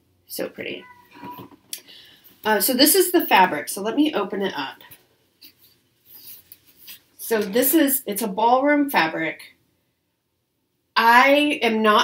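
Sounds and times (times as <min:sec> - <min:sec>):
fabric rustling: 0:04.9 - 0:07.6.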